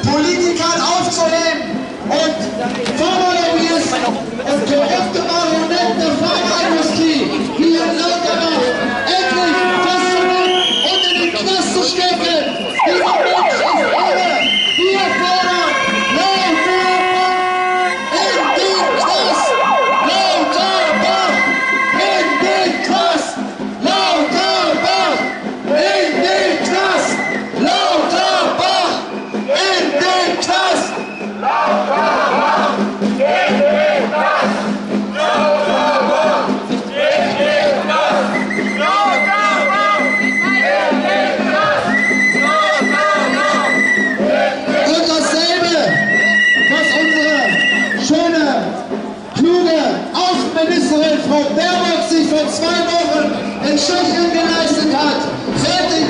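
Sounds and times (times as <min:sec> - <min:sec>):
voices: 0:00.0 - 0:56.0
siren sweeping up and down: 0:12.7 - 0:15.2, 0:18.2 - 0:21.9.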